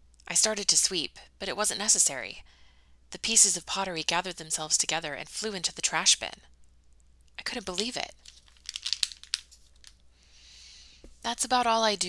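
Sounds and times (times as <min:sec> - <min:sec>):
book pages turning: 0:07.7 - 0:10.0.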